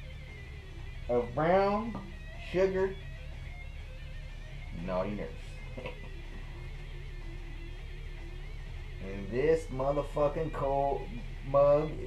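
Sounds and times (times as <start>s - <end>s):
rock music from a radio: 0.0s - 12.0s.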